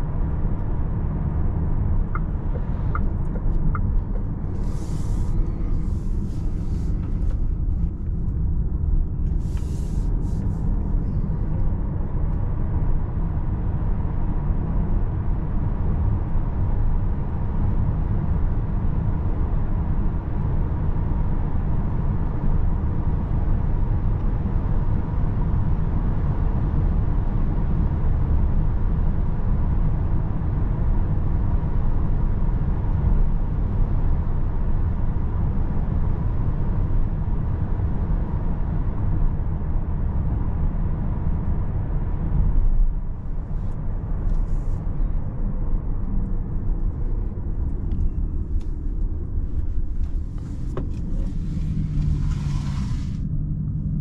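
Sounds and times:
road and tyre rumble in van: 0:00.0 - 0:54.0.

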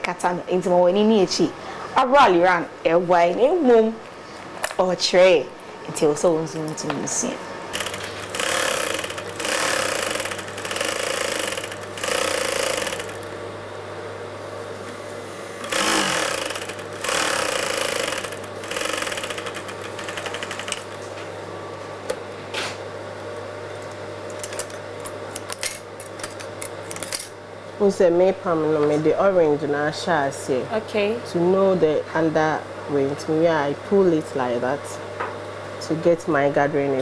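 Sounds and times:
sewing machine stitching: 0:07.8 - 0:13.2, 0:15.6 - 0:20.8.

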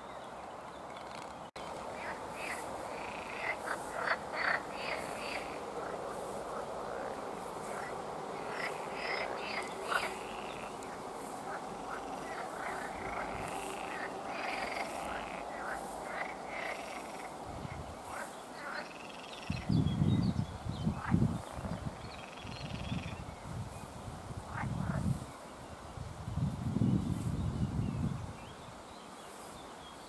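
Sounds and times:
frogs croaking: 0:00.9 - 0:20.1, 0:20.8 - 0:23.3, 0:24.4 - 0:25.2.

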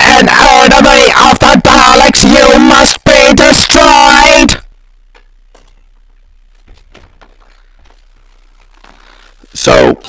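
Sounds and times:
low steady hum: 0:04.6 - 0:10.0.

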